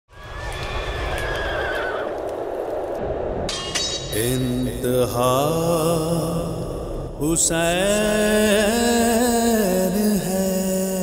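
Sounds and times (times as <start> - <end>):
sharp ringing hit: 3.5 - 5.1.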